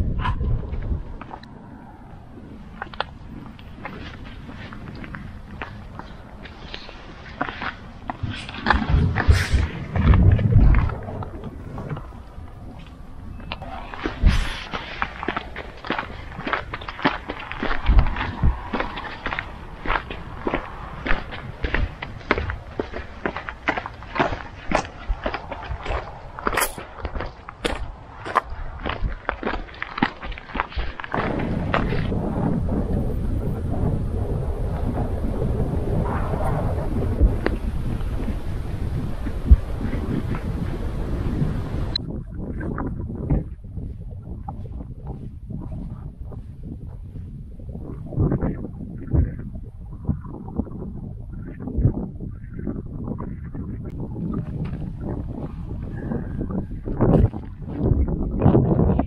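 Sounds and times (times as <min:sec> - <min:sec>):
wind buffeting microphone: 0:00.0 - 0:59.0
footsteps on gravel: 0:02.2 - 0:32.2.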